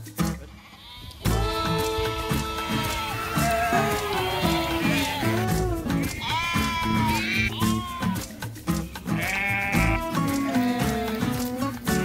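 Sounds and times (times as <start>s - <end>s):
background music with low notes: 0.0s - 12.0s
sheep bleating: 0.5s - 8.3s, 9.0s - 11.6s.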